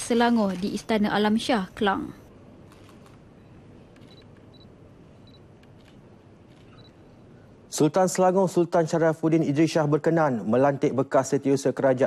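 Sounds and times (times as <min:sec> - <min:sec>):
hall background noise: 0:00.0 - 0:12.0.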